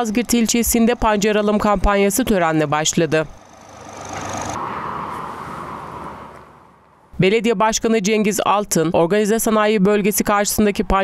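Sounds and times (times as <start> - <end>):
tractor engines running: 0.0 - 7.4.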